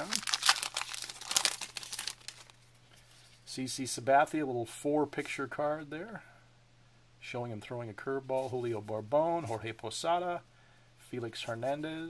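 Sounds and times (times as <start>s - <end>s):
wrapper crinkling and rustling: 0.0s - 2.6s.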